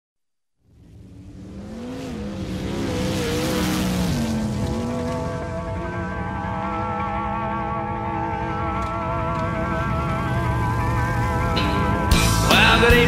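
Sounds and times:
race car engines: 0.6s - 13.0s
sustained music chord: 4.8s - 13.0s.

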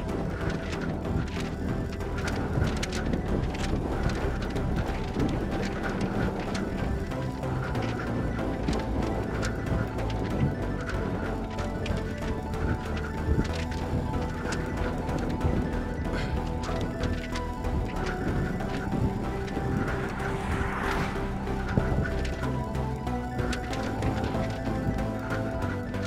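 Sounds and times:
background music: 0.0s - 26.0s
running footsteps on pavement: 0.0s - 26.0s.

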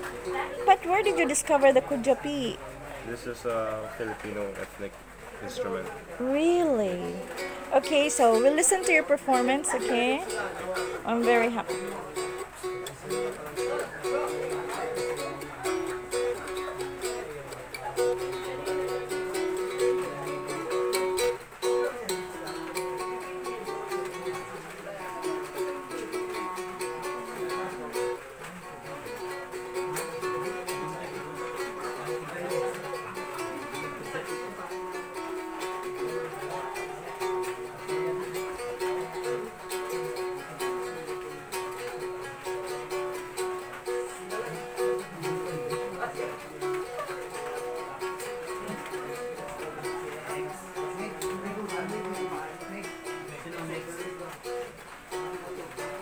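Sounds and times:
plucked lute melody with drone: 0.0s - 2.7s, 6.2s - 56.0s.

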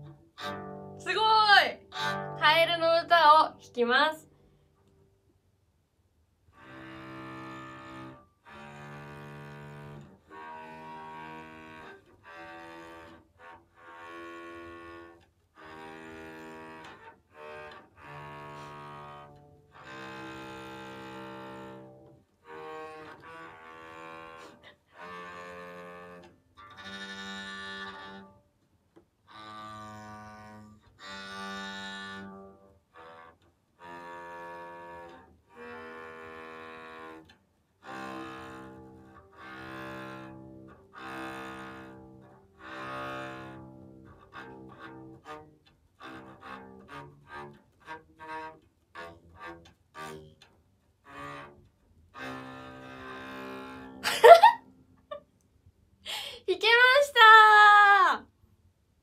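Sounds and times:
bowed electric cello notes: 0.0s - 4.0s, 6.5s - 28.3s, 29.3s - 50.5s, 51.1s - 54.0s.

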